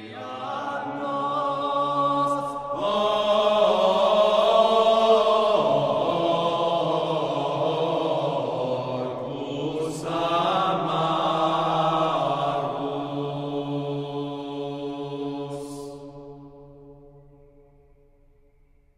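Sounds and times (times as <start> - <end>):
vocal ensemble chanting: 0.0 - 17.3.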